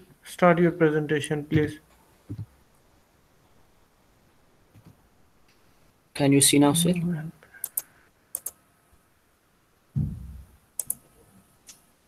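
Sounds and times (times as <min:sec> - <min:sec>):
computer clicks: 0:07.6 - 0:08.6, 0:10.8 - 0:11.1.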